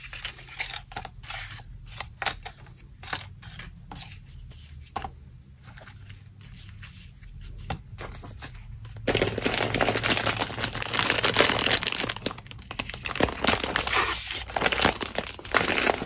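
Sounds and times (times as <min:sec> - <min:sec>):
paper rustling: 0:08.0 - 0:16.0.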